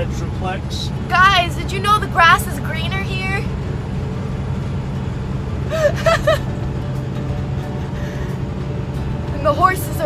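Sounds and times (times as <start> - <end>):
road noise: 0.0 - 10.0
truck engine drone: 0.0 - 10.0
person laughing: 5.7 - 6.6.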